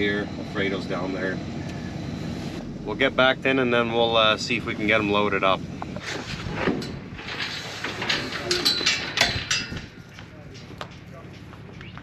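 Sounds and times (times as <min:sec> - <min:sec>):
metal gate panels rattling: 0:05.9 - 0:11.8.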